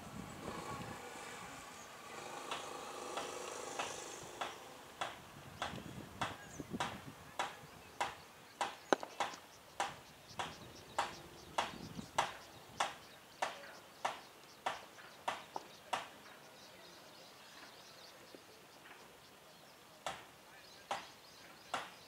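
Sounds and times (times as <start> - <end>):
sharp claps or clicks: 2.5 - 16.1.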